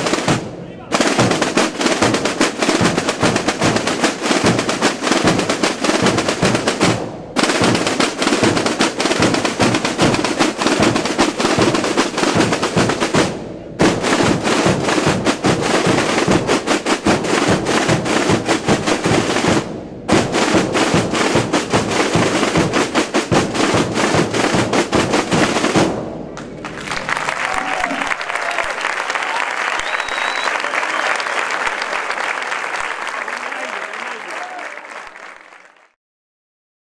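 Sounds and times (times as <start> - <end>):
crowd noise: 0.0 - 8.3, 26.0 - 36.0
snare and bass drums beating: 0.0 - 26.4.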